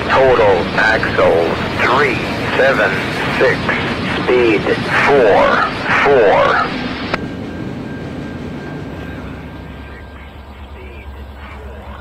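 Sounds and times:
synthesized voice over radio: 0:00.0 - 0:06.9, 0:09.6 - 0:12.0
freight train cars rolling past: 0:00.0 - 0:12.0.

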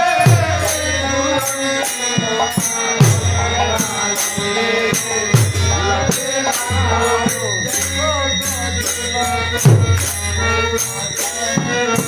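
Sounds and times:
harmonium chords: 0:00.0 - 0:12.0
man singing: 0:00.0 - 0:12.0.

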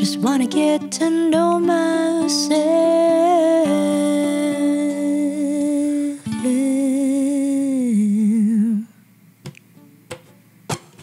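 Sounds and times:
ukulele: 0:00.0 - 0:07.8, 0:09.4 - 0:11.0.

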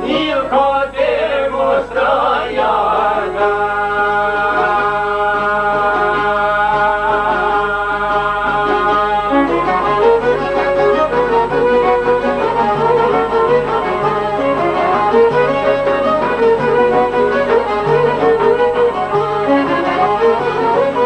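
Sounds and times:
plucked lute melody: 0:04.4 - 0:21.0.

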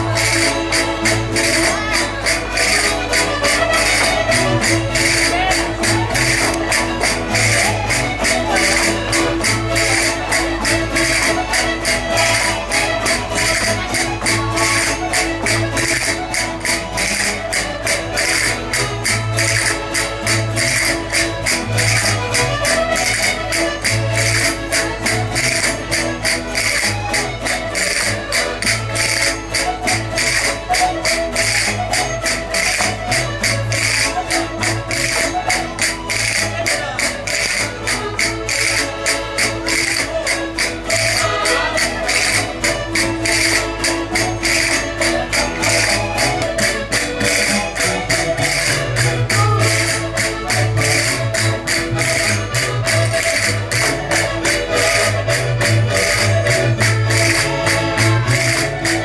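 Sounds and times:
fast percussive beat: 0:00.0 - 0:59.0
folk dance music on accordions: 0:00.0 - 0:59.0
guitar: 0:00.0 - 0:59.0.

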